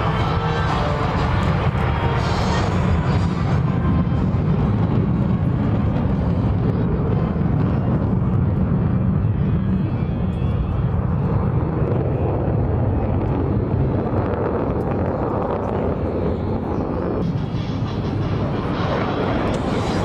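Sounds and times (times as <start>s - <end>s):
fighter jets flying over: 0.0s - 20.0s.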